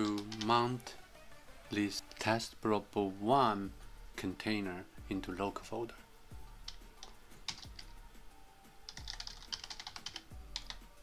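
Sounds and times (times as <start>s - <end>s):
typing on computer keyboard: 6.7s - 7.8s, 8.9s - 10.8s.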